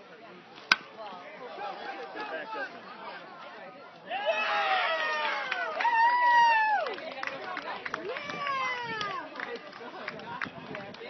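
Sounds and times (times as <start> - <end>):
baseball bat striking ball: 0.7 - 0.9.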